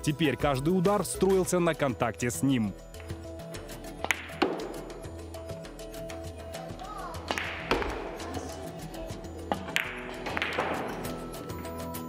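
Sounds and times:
background music: 0.0 - 12.0
billiard balls clacking: 3.9 - 5.1, 7.2 - 8.3, 9.4 - 11.6.

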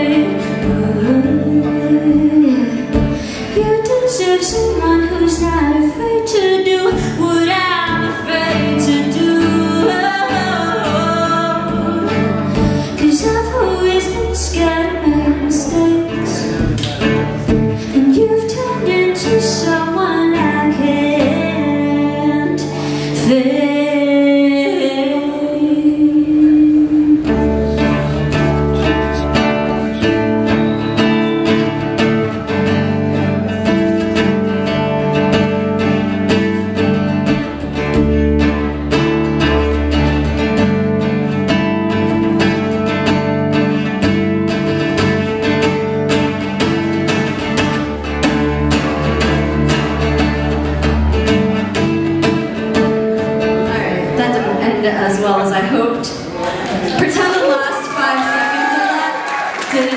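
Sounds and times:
acoustic guitars strumming: 0.0 - 57.7
low bass notes: 10.5 - 22.6, 25.8 - 56.4.

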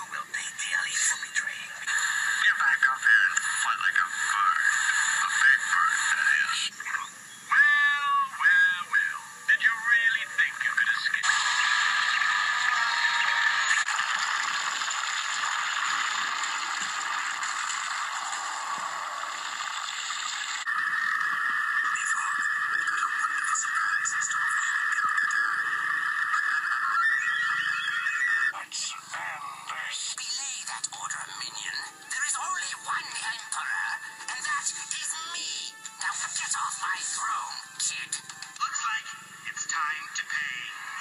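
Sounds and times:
muffled cartoon yell from tv: 2.4 - 13.9, 20.7 - 30.5.

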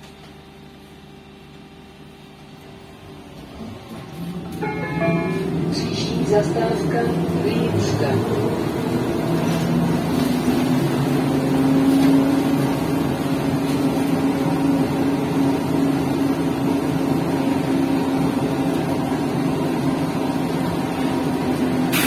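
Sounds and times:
road noise: 3.5 - 22.0.

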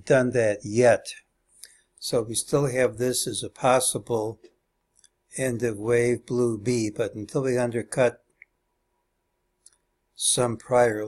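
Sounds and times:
man speaking: 0.0 - 1.3, 2.0 - 4.5, 5.3 - 8.3, 10.2 - 11.0.

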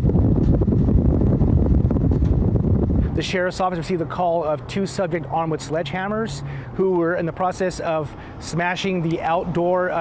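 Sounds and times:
low background rumble: 0.0 - 3.2.

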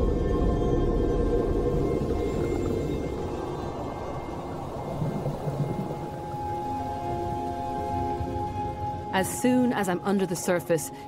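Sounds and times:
underwater bubbles fizzing: 0.0 - 8.9
soundtrack music with held notes: 2.0 - 11.0.

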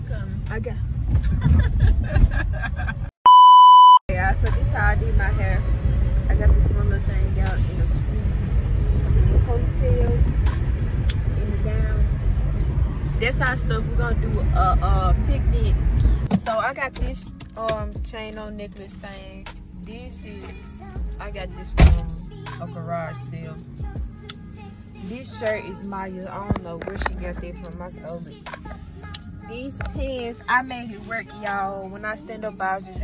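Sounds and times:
road noise rumble in car: 0.0 - 3.2, 4.1 - 33.0
high bleep tone: 3.2 - 4.0
song with singing and beat: 20.3 - 33.0.

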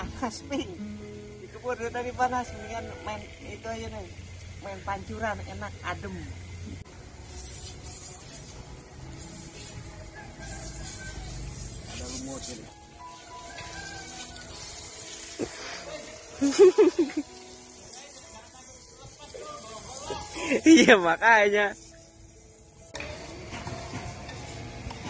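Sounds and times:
sprinkler spraying water: 0.0 - 25.0.

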